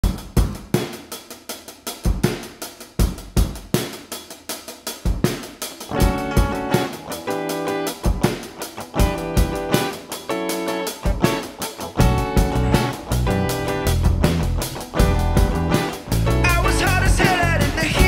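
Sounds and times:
drum kit playing a beat: 0:00.0 - 0:18.0
electric guitar playing chords: 0:05.9 - 0:18.0.

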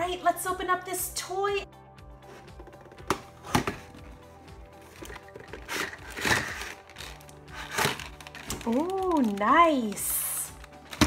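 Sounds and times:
packaging rustling: 0:04.8 - 0:11.0.

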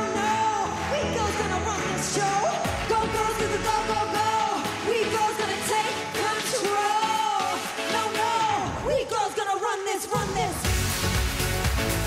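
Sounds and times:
pop song with vocals and band: 0:00.0 - 0:12.0.

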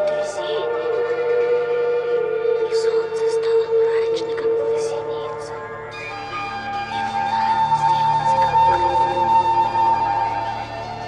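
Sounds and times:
droning electronic tone: 0:00.0 - 0:11.0.

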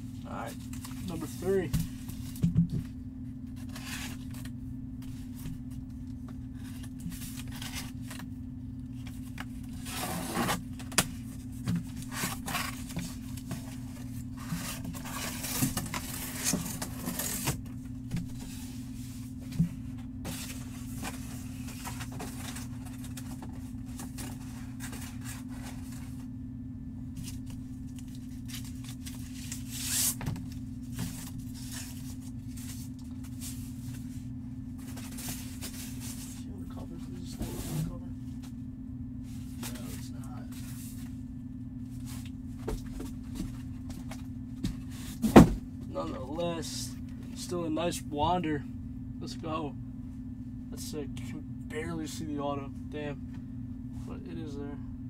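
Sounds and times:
low electrical hum: 0:00.0 - 0:55.0
cardboard packaging rustling: 0:09.0 - 0:17.6, 0:19.8 - 0:26.3, 0:27.2 - 0:34.2.

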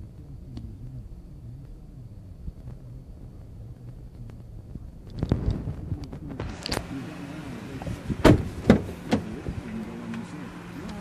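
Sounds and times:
low steady hum: 0:00.0 - 0:11.0
car door handle and latch clicks: 0:08.2 - 0:09.3.

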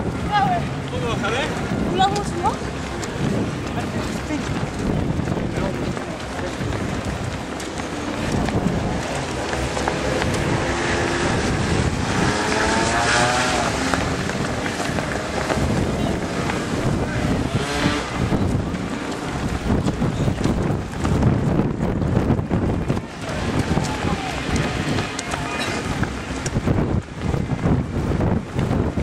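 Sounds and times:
bystanders' voices: 0:00.0 - 0:28.9
runners' footfalls on asphalt: 0:00.0 - 0:29.0
wind rumble on microphone: 0:00.0 - 0:29.0.

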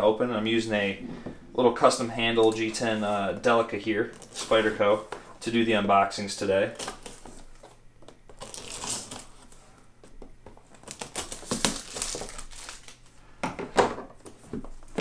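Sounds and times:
plastic wrap crinkling and tearing: 0:08.3 - 0:09.6, 0:10.6 - 0:13.2
knife slitting shrink-wrap: 0:08.4 - 0:09.4, 0:10.8 - 0:13.0
sharp plastic crackle: 0:10.8 - 0:13.0.

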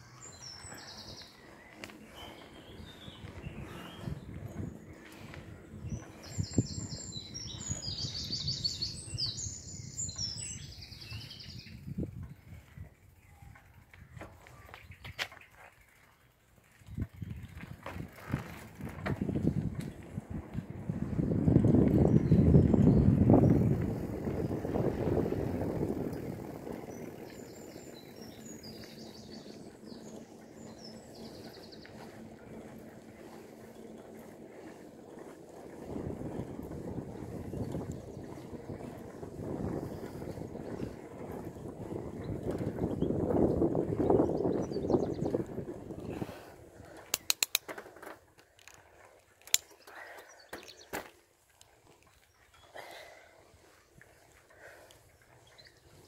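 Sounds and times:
bicycle tyres rolling: 0:00.0 - 0:56.0
wind buffeting: 0:00.1 - 0:14.2, 0:16.8 - 0:47.6
sharp clicks: 0:47.1 - 0:47.7.

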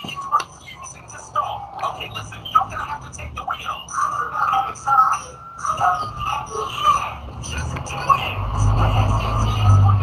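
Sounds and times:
vehicle engine rumble: 0:00.0 - 0:10.0.

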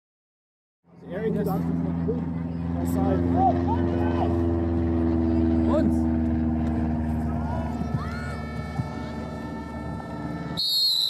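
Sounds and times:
outdoor background noise: 0:00.8 - 0:11.0
referee's whistle blast: 0:10.6 - 0:11.0.

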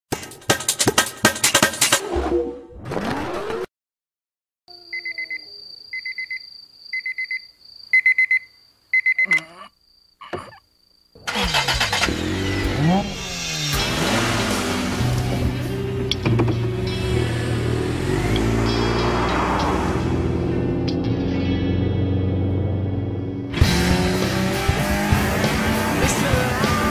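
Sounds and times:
short electronic beeps: 0:04.9 - 0:09.6
racing car engines: 0:11.2 - 0:26.9
loud music track: 0:12.0 - 0:22.4, 0:23.5 - 0:26.9.

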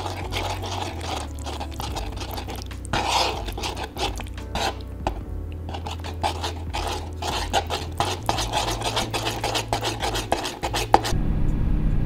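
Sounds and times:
spoon stirring sauce in wooden bowl: 0:00.0 - 0:11.1.

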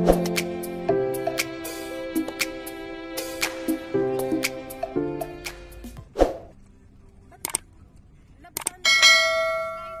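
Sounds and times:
short whoosh: 0:06.1 - 0:06.5
sharp mouse clicks: 0:07.4 - 0:07.7, 0:08.6 - 0:08.8
bright bell ding: 0:08.9 - 0:10.0.

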